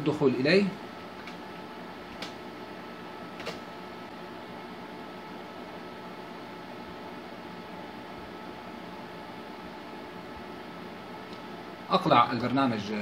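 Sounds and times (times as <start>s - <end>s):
computer cooling fans running: 0.0s - 13.0s.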